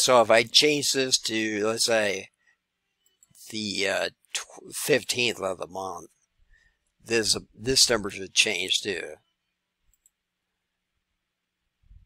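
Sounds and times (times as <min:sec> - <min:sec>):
computer mouse clicks: 0:09.9 - 0:10.2.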